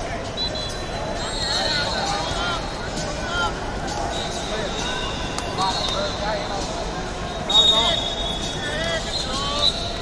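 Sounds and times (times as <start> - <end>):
crowd shouting and calling: 0.0 - 10.0.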